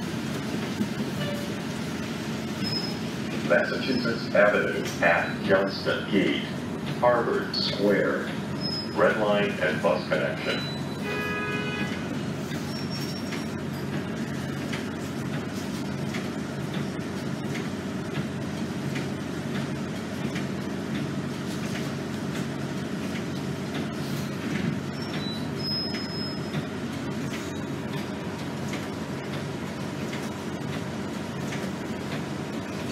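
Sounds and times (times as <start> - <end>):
bus engine idling: 0.0 - 32.9.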